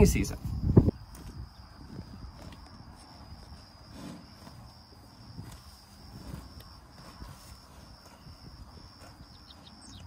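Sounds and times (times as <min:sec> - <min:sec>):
bison chewing grass: 0:00.4 - 0:10.0.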